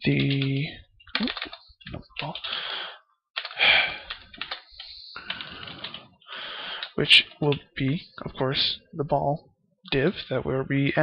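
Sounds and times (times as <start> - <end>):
keyboard typing clicks: 0.1 - 2.5, 3.4 - 6.0.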